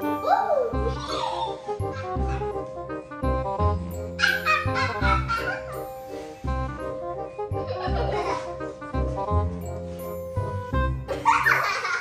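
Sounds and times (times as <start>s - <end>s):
background music with beat: 0.0s - 12.0s.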